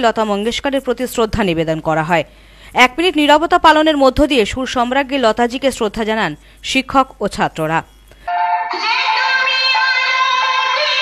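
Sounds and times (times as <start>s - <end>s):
prayer song sung in held notes: 8.4s - 11.0s.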